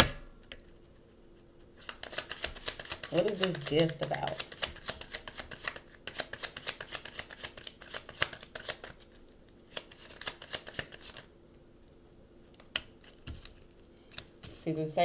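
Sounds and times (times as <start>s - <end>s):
cards being shuffled: 1.8s - 11.3s, 12.5s - 14.6s.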